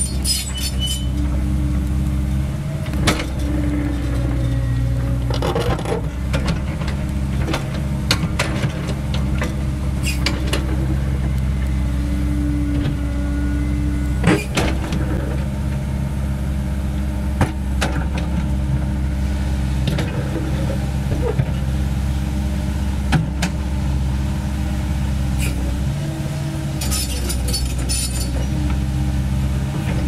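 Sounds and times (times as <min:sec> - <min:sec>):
excavator diesel engine running: 0:00.0 - 0:30.0.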